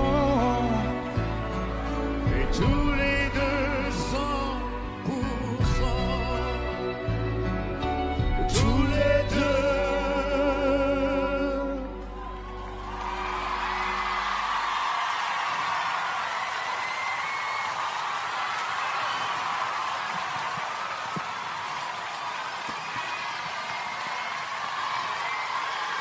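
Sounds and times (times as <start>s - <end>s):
audience applauding: 11.7s - 26.0s
audience cheering and whistling: 11.8s - 26.0s.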